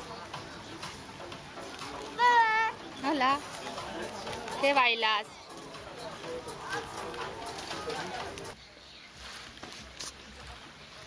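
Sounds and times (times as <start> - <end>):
background voices talking: 0.0 - 11.0.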